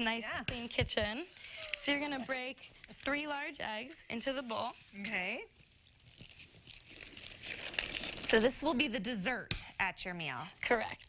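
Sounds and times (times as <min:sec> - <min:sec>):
plastic bag crinkling: 0:04.6 - 0:08.8.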